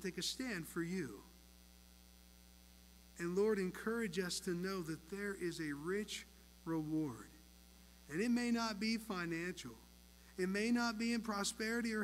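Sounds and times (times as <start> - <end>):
man speaking: 0.0 - 1.3, 3.2 - 7.4, 8.1 - 12.0
low electrical hum: 0.0 - 12.0.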